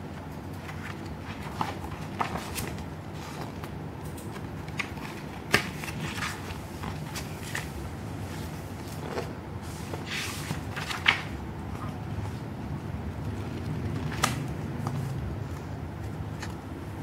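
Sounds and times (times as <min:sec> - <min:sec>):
low background noise: 0:00.0 - 0:17.0
pages rustling and clicking: 0:00.2 - 0:12.5, 0:13.2 - 0:16.6
sharp paper snap: 0:14.0 - 0:14.6.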